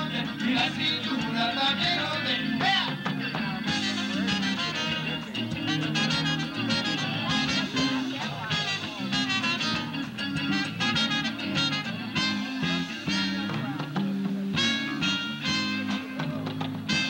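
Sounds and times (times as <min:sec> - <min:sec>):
live band playing upbeat music: 0:00.0 - 0:17.0
saxophone lead: 0:03.6 - 0:17.0.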